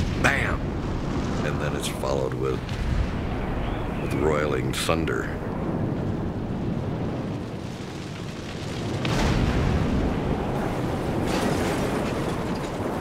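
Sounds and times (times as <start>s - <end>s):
explosion deep rumble: 0.0s - 13.0s.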